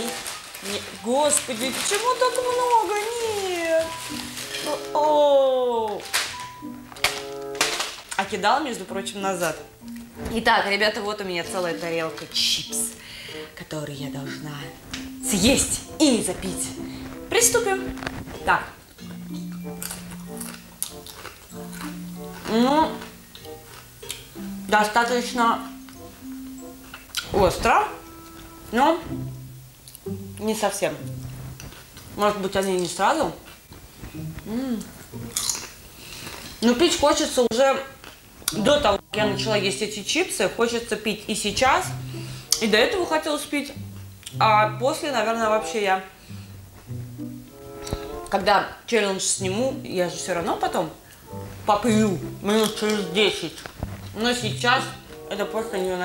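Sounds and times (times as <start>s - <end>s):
crunching potato chips: 0.0s - 8.4s, 15.8s - 27.6s, 29.8s - 36.9s
plastic packet rustling: 0.0s - 43.1s
background music: 0.0s - 56.0s
woman humming: 22.4s - 23.1s, 34.2s - 35.3s.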